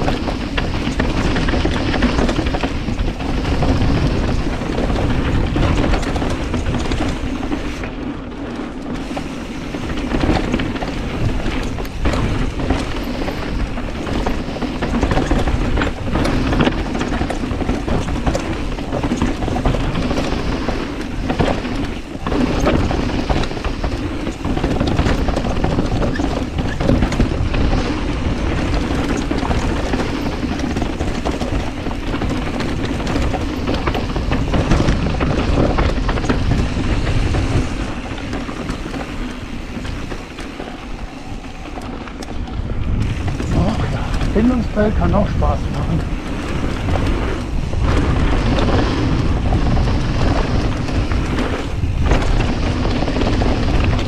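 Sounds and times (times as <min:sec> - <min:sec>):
bike knocking and rattling: 0:00.0 - 0:54.0
bike tyres rolling on gravel: 0:00.0 - 0:54.0.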